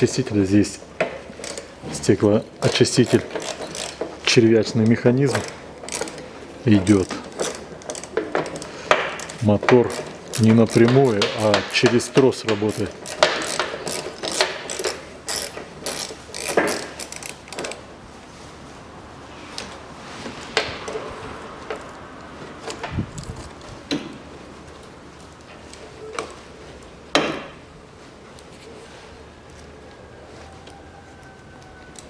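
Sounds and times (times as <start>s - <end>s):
wires and connectors rattling: 1.3s - 17.9s.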